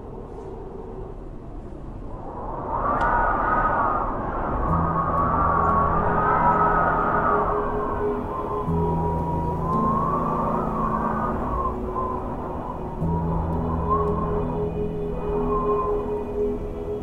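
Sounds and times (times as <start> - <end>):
ambient music low notes: 0.0 - 17.0
wind whistling: 0.0 - 17.0.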